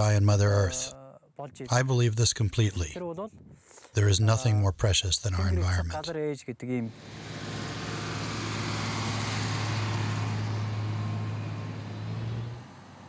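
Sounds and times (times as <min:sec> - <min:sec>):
heavy vehicle engine humming: 0:06.9 - 0:13.0.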